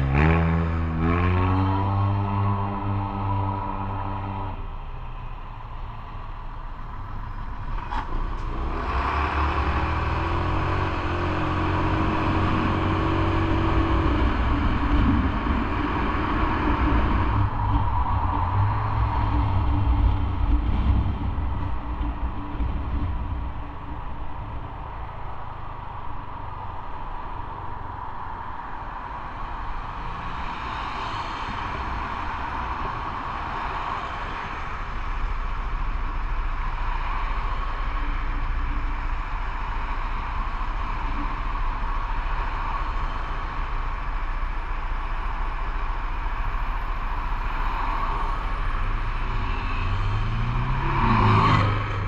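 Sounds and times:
wind and road noise: 0.0 - 52.0.

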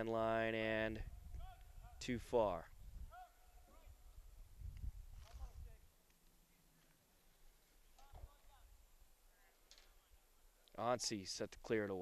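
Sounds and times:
distant shouts: 1.2 - 2.1, 3.0 - 4.2.

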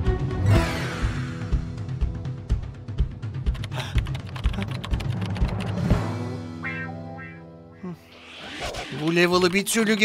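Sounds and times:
computer keyboard typing: 3.5 - 5.8.

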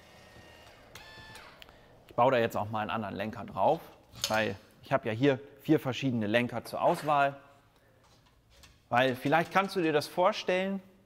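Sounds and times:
small electric motor whirring: 0.0 - 1.7.

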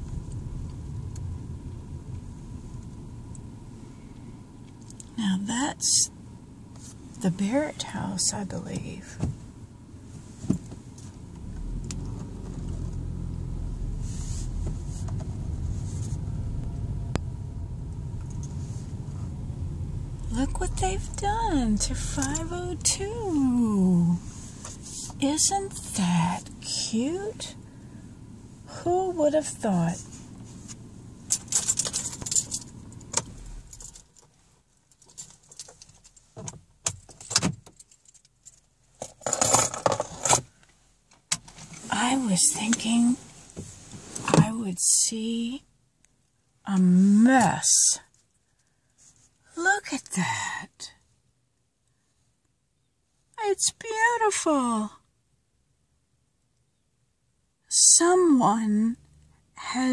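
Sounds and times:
car engine running: 0.0 - 34.2
road rumble: 0.0 - 51.0
keys jingling: 31.3 - 32.8.

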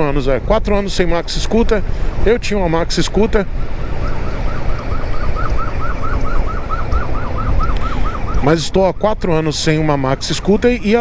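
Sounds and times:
wind: 0.0 - 11.0
emergency siren yelping: 3.5 - 10.2.

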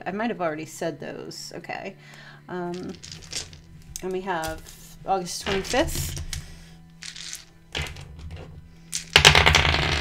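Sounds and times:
dice rattling in hands: 2.7 - 4.8, 5.5 - 10.0.

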